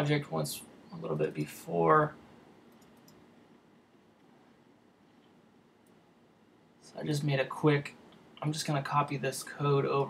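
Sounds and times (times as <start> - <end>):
computer mouse clicks: 2.7 - 3.2.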